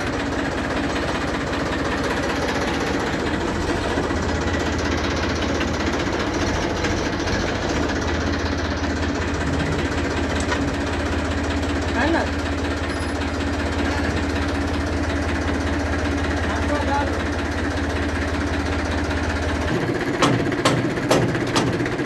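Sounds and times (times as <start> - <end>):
tractor diesel engine clattering: 0.0 - 22.0.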